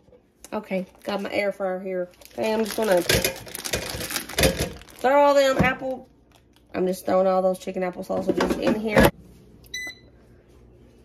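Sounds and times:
plastic packaging crinkling: 2.0 - 5.5.

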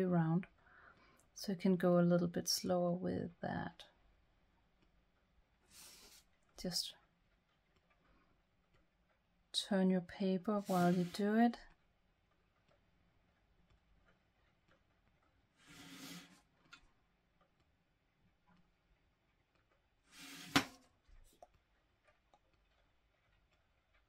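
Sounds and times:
paper sliding on table: 5.7 - 6.2, 10.6 - 11.3, 15.6 - 16.4, 20.1 - 20.8.

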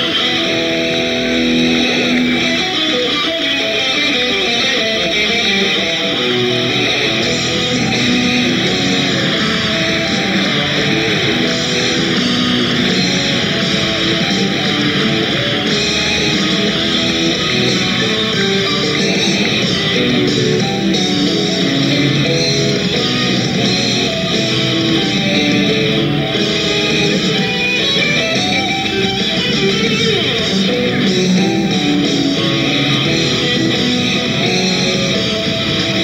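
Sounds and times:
electric guitar: 0.0 - 36.0
live rock band playing: 0.0 - 36.0.

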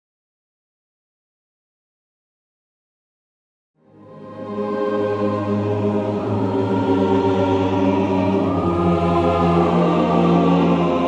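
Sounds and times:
choir holding sustained chords: 3.8 - 11.0.

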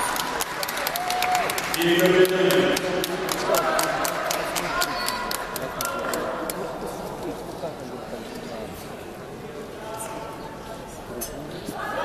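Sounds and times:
murmur of crowd voices: 0.0 - 12.0
hand clapping: 0.1 - 6.6.

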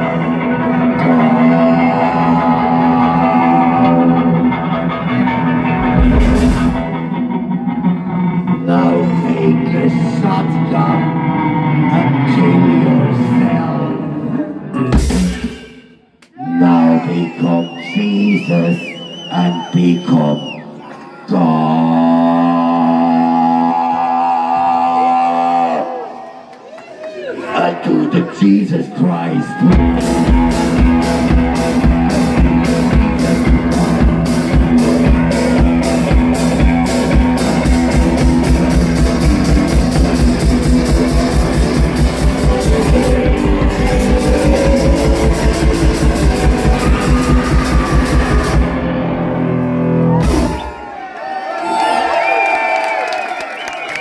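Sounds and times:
man singing a long note: 0.0 - 4.5, 16.4 - 20.6, 21.3 - 26.0, 42.3 - 48.3
electric guitar played hard: 0.0 - 12.4, 29.8 - 50.7
driving drum beat with cymbal: 5.8 - 6.9, 15.0 - 15.7, 29.8 - 48.8.

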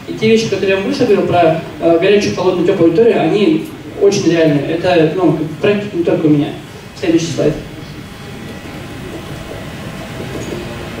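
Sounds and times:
low rumble and hiss of room noise: 0.0 - 11.0.

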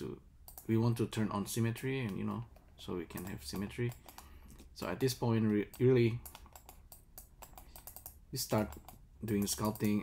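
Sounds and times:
computer keys clicking: 0.4 - 1.0, 2.0 - 10.0.

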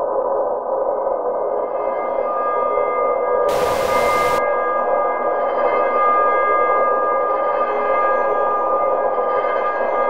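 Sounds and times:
ambient drone of steady tones: 3.5 - 4.4
hissing static: 3.5 - 4.4.

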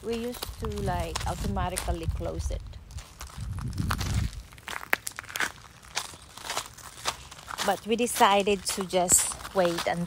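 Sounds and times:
footsteps crunching on gravel: 0.0 - 10.0
low microphone rumble: 0.4 - 4.6.

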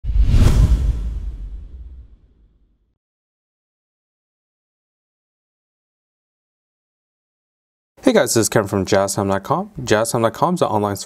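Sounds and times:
whoosh with heavy bass: 0.0 - 2.4.

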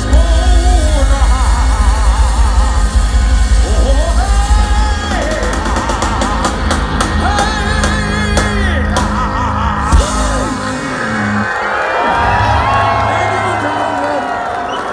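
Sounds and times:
live ska punk band: 0.0 - 11.7
crowd cheering and yelling: 0.0 - 14.9.

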